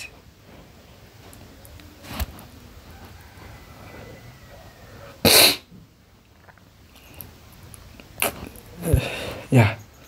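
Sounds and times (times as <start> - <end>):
loud sneeze: 5.2 - 5.7.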